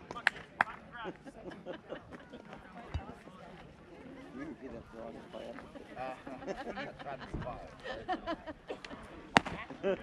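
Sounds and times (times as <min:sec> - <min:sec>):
chatter of players and spectators: 0:00.0 - 0:10.0
baseball striking crack: 0:09.3 - 0:09.7.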